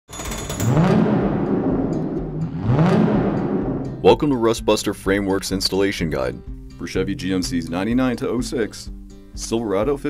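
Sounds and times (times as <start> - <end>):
low swells rising and falling: 0.7 - 5.1.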